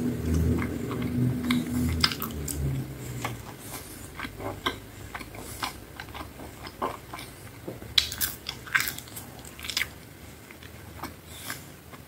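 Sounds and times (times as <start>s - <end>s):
chewing soft food: 0.0s - 12.0s.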